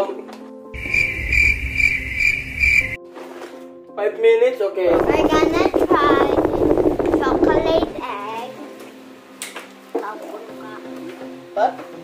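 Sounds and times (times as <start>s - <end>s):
cricket chirping: 0.8s - 3.0s
faint low hum: 4.9s - 8.0s.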